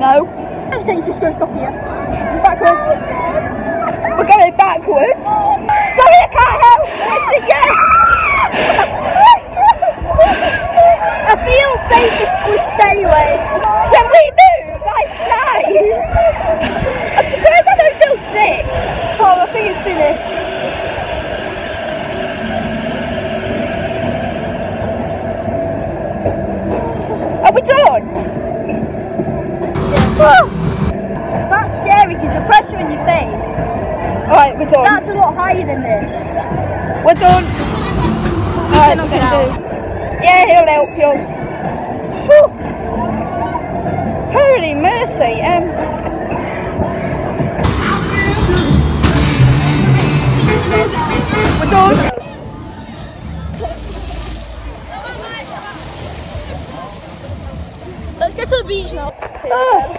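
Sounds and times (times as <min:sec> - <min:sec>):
fairground ride rumble: 0:00.0 - 0:59.9
girls' voices exclaiming: 0:01.6 - 0:20.1
voices calling out: 0:29.7 - 0:59.9.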